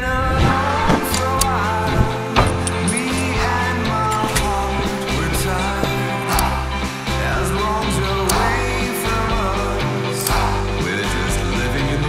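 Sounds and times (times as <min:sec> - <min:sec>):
trailer music: 0:00.0 - 0:12.0.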